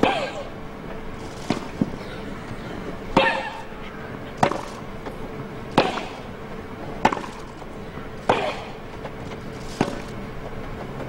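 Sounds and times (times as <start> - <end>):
tennis ball hit with rackets: 1.4 - 2.0, 3.1 - 3.7, 4.4 - 6.3, 7.0 - 10.2.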